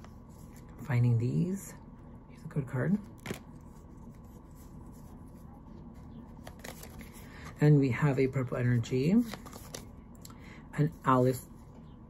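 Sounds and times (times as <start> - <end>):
trading cards rustling: 3.0 - 7.6, 8.4 - 10.0.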